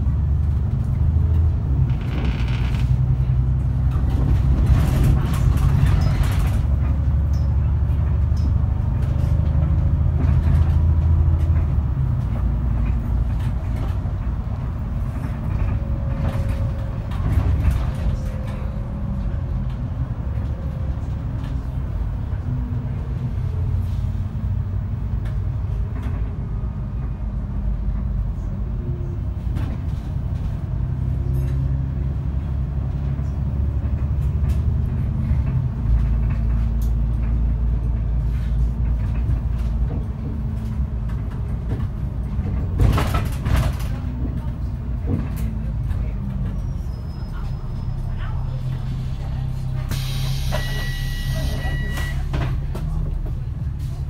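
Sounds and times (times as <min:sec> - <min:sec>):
bus diesel engine drone: 0:00.0 - 0:54.0.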